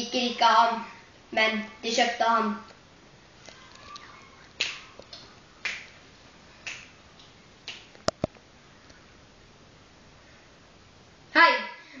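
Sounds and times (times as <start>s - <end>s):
sharp snapping clicks: 6.6s - 8.3s.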